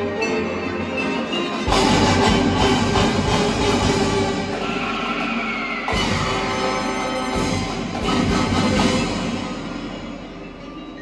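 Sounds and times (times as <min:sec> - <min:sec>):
marching band playing: 0:00.0 - 0:11.0.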